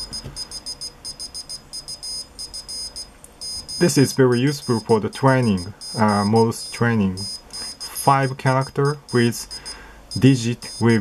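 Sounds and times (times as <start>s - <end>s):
morse code beeping: 0.0s - 11.0s.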